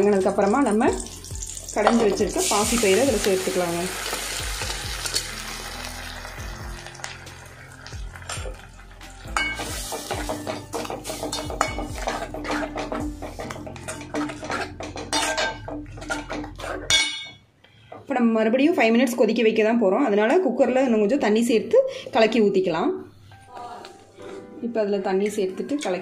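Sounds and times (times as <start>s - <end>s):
food sizzling in hot oil: 0.0s - 15.4s
spoon scraping and clinking on pan: 9.3s - 17.4s.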